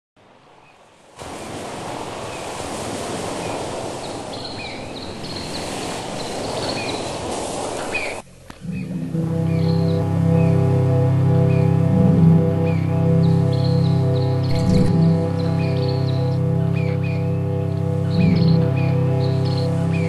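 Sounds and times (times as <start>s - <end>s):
ocean surf: 0.2s - 20.0s
small birds chirping: 3.3s - 10.6s, 12.5s - 20.0s
music with low sustained notes: 8.2s - 20.0s.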